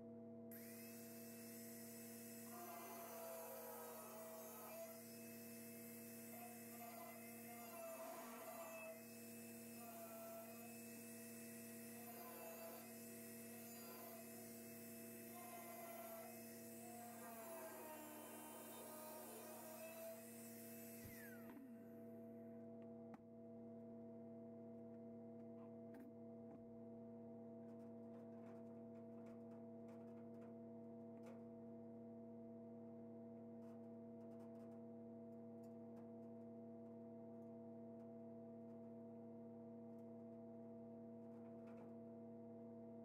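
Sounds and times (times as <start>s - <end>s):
angle grinder cutting steel: 0.6s - 22.1s.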